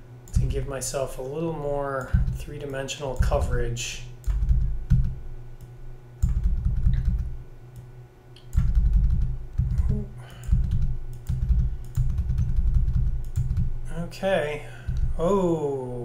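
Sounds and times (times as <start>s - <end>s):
keyboard keys tapping: 2.0s - 2.5s, 3.2s - 3.6s, 4.2s - 5.2s, 6.2s - 7.3s, 8.4s - 13.7s.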